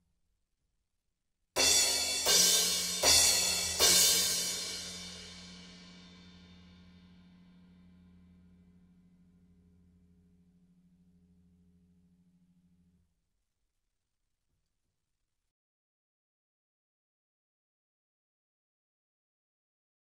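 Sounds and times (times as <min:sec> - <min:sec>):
cymbal crashes ringing: 0:01.6 - 0:06.2.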